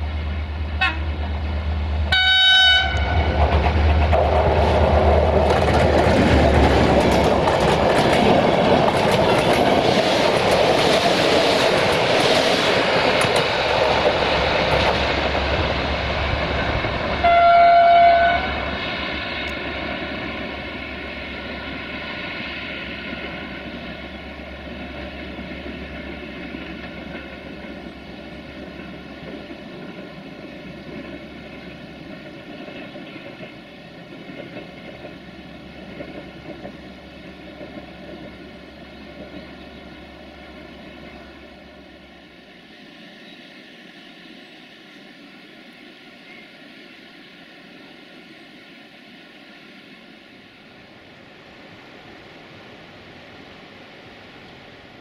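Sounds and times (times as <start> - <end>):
train wheels on rails: 0.0 - 55.0
train horn blast: 0.8 - 1.2, 2.1 - 3.4, 17.2 - 18.7.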